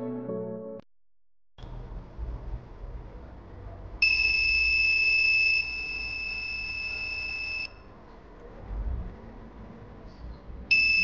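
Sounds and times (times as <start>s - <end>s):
high-pitched buzzer tone: 4.0s - 7.8s.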